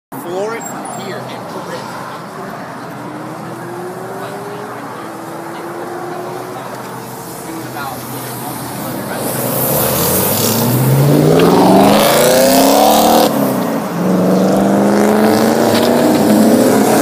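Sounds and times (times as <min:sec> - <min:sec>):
traffic noise: 0:00.1 - 0:17.0
car engines running at low speed: 0:01.8 - 0:17.0.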